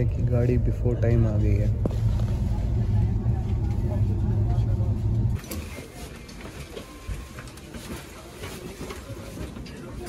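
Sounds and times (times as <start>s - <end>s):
faint voices: 0.0s - 10.0s
train carriage rumble: 0.0s - 10.0s.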